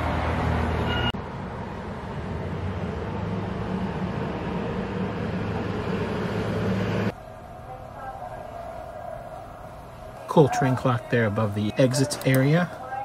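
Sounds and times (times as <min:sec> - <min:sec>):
wash of noise: 0:01.3 - 0:07.4.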